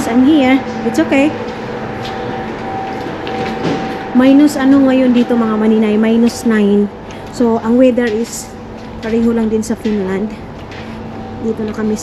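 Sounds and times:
machinery drone: 0:00.0 - 0:12.0
mid-pitched hum: 0:00.0 - 0:12.0.

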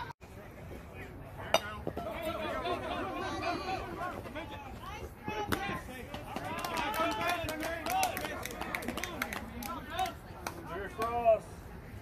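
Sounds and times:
people calling and chattering: 0:00.0 - 0:12.0.

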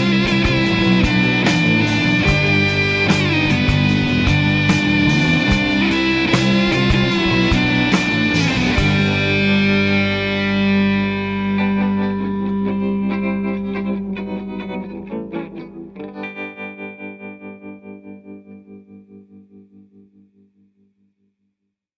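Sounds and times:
distorted electric guitar chord: 0:00.0 - 0:19.7.

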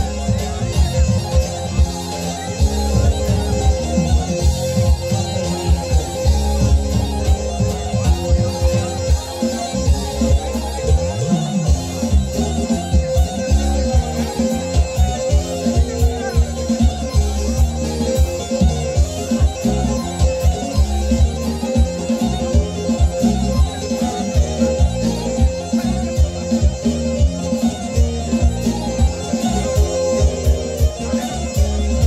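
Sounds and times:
folk band playing dance music: 0:00.0 - 0:32.0
steady drum beat: 0:00.0 - 0:32.0.

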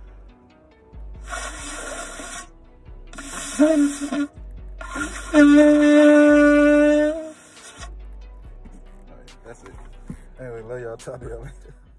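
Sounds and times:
shofar blowing: 0:03.2 - 0:07.9.

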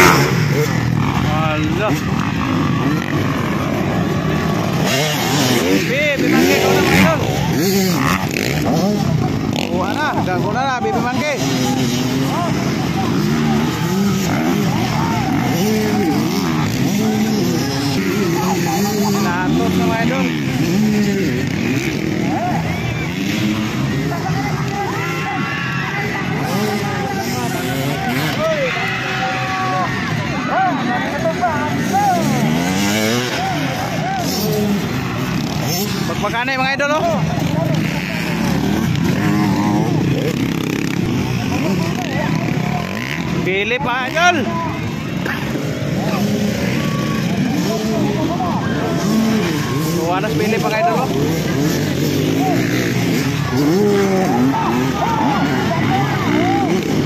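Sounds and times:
dirt-bike engines revving: 0:00.0 - 0:57.0.

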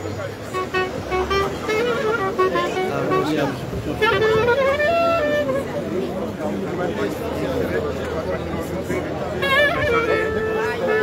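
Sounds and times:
reedy wind instrument melody: 0:00.0 - 0:07.8, 0:08.4 - 0:11.0
crowd voices: 0:00.0 - 0:11.0.

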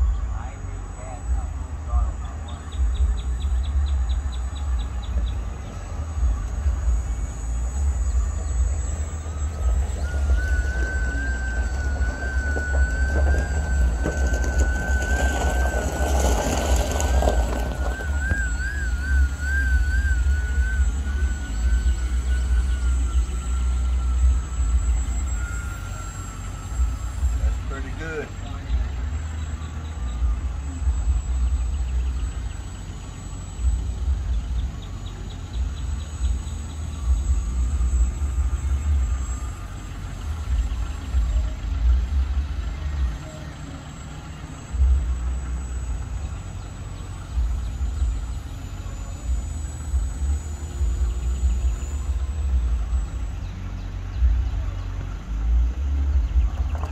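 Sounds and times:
wind rumble on microphone: 0:00.0 - 0:43.2
model plane motor whine: 0:00.0 - 0:56.9.

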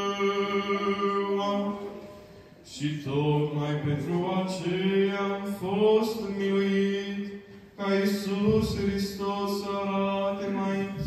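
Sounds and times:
man chanting liturgical chant: 0:00.0 - 0:11.0.

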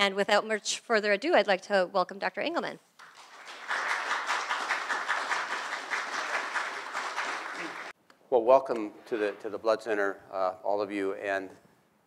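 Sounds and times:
audience applauding: 0:03.0 - 0:08.0.

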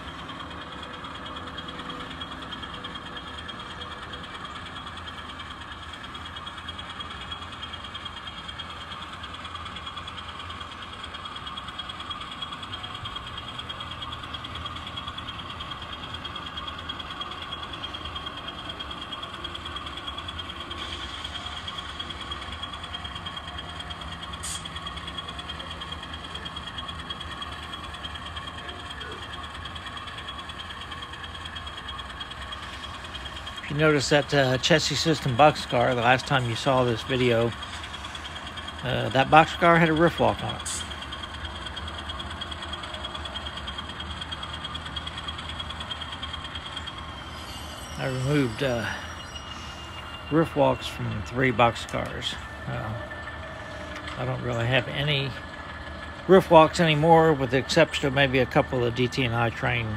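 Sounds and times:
model locomotive running: 0:00.0 - 0:59.9.

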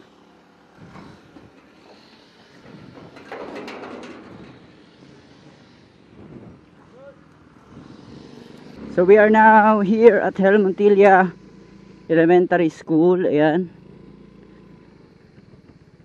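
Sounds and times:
low outdoor background: 0:00.0 - 0:16.0
metal gate rattling and scraping: 0:00.8 - 0:05.9.

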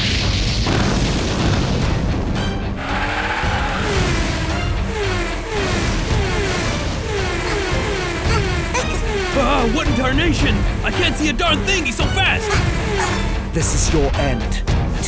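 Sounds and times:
action soundtrack music: 0:00.0 - 0:15.0
heavy booming sound effect: 0:00.6 - 0:02.6.

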